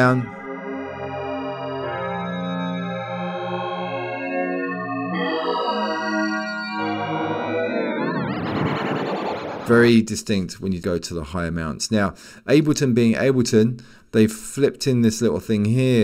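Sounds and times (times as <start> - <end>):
synth pad chords with chorus: 0.3 - 9.7.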